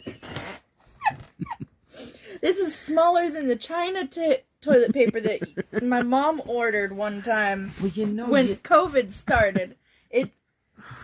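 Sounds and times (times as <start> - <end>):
woman laughing: 1.0 - 1.7, 4.7 - 6.2, 9.2 - 10.3.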